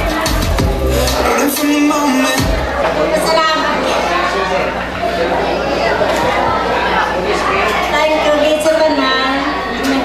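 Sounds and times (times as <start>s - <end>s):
crowd chatter in a hall: 0.0s - 10.0s
people talking: 1.2s - 10.0s.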